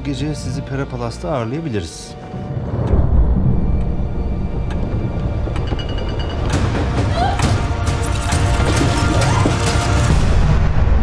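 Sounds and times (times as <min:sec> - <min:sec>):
dark trailer music: 0:00.0 - 0:11.0.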